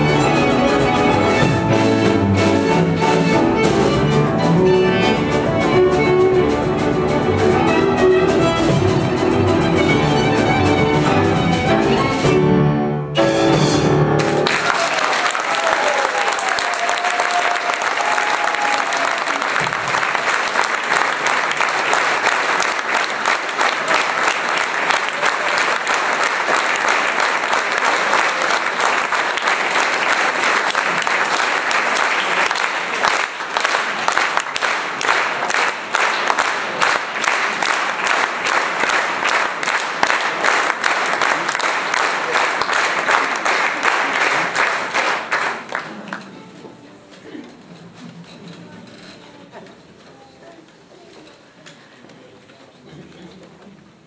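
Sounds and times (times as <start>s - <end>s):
audience clapping: 14.2s - 46.6s.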